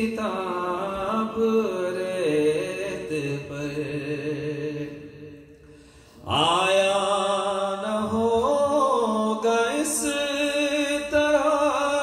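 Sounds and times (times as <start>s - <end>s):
man chanting into a microphone: 0.0s - 5.6s, 6.2s - 12.0s.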